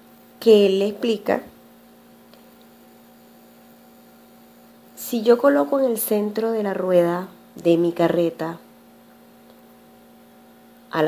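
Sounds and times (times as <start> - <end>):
faint electrical hum: 0.0 - 11.0
light hiss: 1.8 - 5.7.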